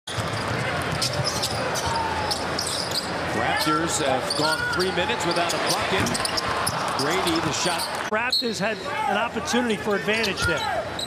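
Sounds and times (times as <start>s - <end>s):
crowd noise: 0.1s - 11.0s.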